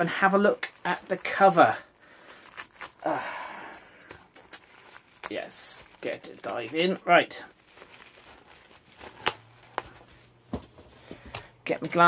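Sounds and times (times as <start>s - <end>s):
plastic crinkling: 0.0s - 12.0s.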